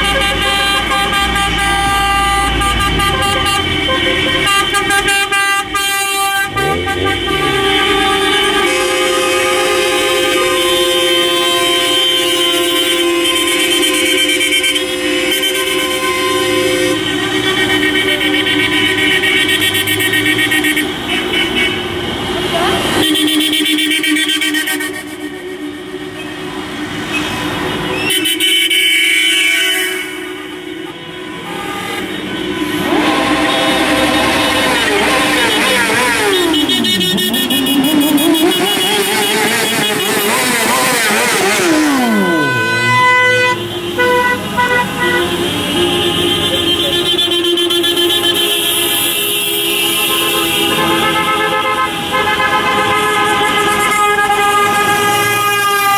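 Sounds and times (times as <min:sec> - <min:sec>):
taxi horns honking: 0:00.0 - 0:55.9
wailing siren tone: 0:05.7 - 0:09.6, 0:30.8 - 0:43.8.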